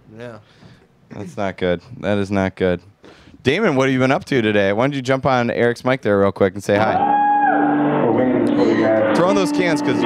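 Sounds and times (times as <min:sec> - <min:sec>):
muffled recorded song with guitar: 0:07.0 - 0:10.0.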